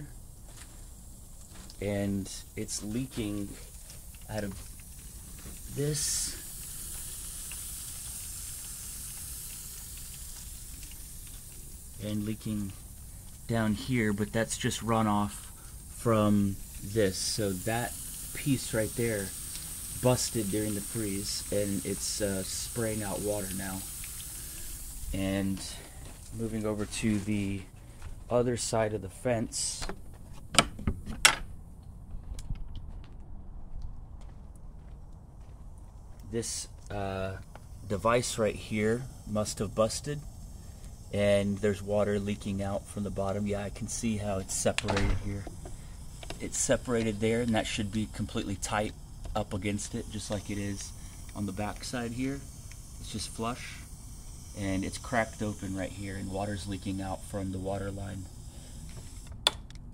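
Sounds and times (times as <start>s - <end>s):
water jet spraying hiss: 0.0s - 29.9s, 36.1s - 59.3s
faint ticks: 3.1s - 26.4s
gate latch clicking: 44.8s - 45.3s.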